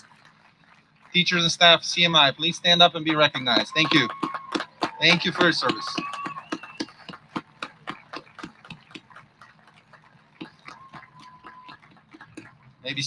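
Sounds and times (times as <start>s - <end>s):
crowd applauding: 0.0s - 13.0s.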